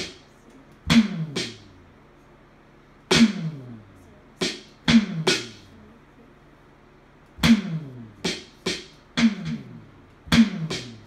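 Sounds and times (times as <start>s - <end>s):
electronic drum hit: 0.9s - 1.7s, 3.1s - 3.8s, 4.4s - 5.6s, 7.4s - 11.0s.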